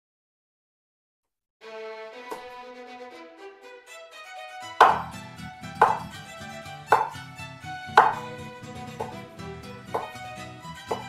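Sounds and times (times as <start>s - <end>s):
violin music: 1.6s - 11.0s
knife knocking on cutting board: 4.8s - 5.1s, 5.8s - 6.1s, 7.0s - 7.2s, 10.0s - 10.2s.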